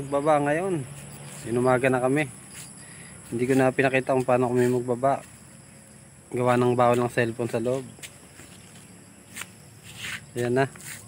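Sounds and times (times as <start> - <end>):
high-pitched insect drone: 0.0 - 11.0
footstep scuff: 0.9 - 1.8, 2.4 - 5.6, 6.4 - 11.0.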